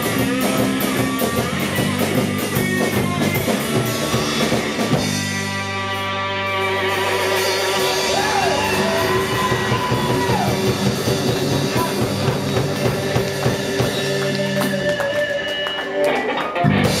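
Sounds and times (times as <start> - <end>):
drum kit and cymbal hits: 0.0 - 15.3, 16.7 - 17.0
electric bass: 0.0 - 17.0
electric guitar bending notes: 0.0 - 17.0.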